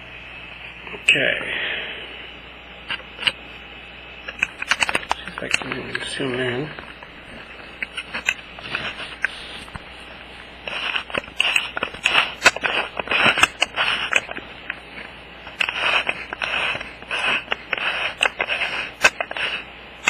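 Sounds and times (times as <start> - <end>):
camera handling rubbing and scraping: 4.3 - 6.1, 6.7 - 19.7.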